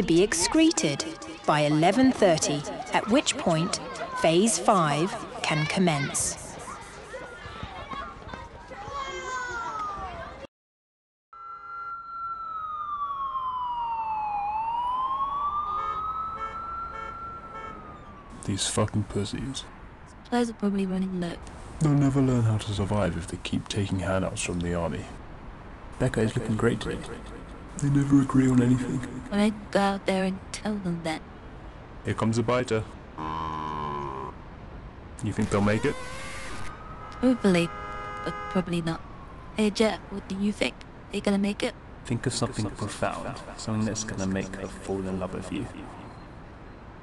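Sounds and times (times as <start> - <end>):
siren wailing: 0.0 - 5.4, 11.4 - 18.5, 35.4 - 40.2, 43.6 - 46.3
zombie growl: 33.2 - 34.4.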